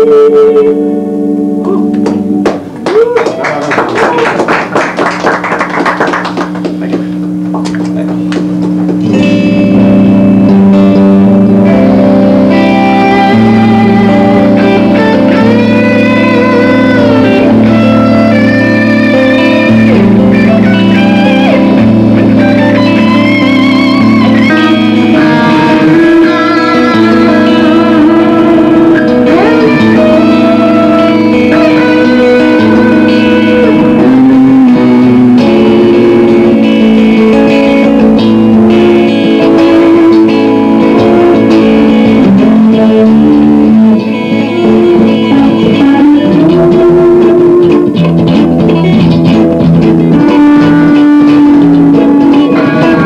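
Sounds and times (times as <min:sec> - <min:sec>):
sustained electric guitar chord: 0:00.0 - 0:02.9, 0:03.7 - 0:53.0
lead electric guitar melody: 0:00.0 - 0:53.0
hand claps: 0:01.9 - 0:09.2.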